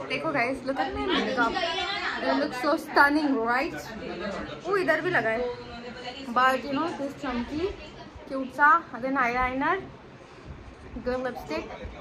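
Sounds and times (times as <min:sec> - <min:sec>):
woman talking: 0:00.0 - 0:03.9, 0:04.7 - 0:09.9, 0:11.0 - 0:11.8
chatter of people: 0:00.0 - 0:12.0.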